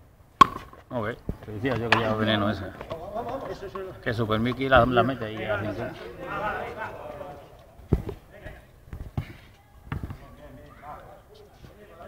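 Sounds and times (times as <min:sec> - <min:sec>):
rubber ball smacks on racket and wall: 0:00.4 - 0:00.8.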